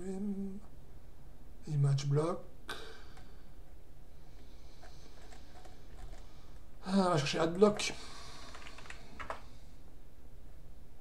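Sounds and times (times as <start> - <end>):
computer keyboard keystrokes: 8.5 - 9.4.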